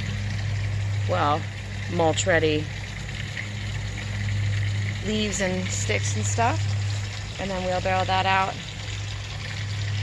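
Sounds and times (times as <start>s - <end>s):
electric pump humming: 0.0s - 10.0s
running water: 0.0s - 10.0s.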